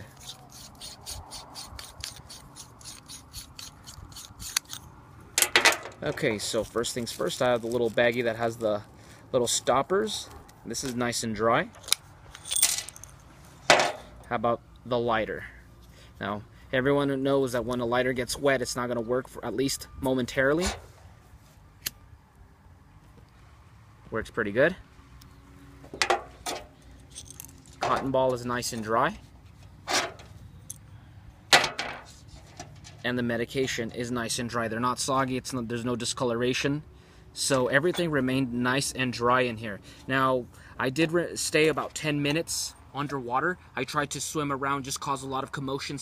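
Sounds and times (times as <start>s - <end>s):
metal cap threads rasping: 0.0s - 6.0s.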